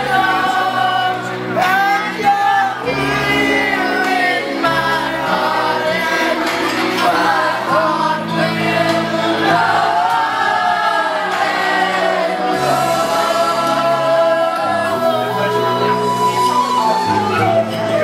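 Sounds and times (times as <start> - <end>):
backing track: 0.0 - 18.0
people singing a ballad together: 0.0 - 18.0.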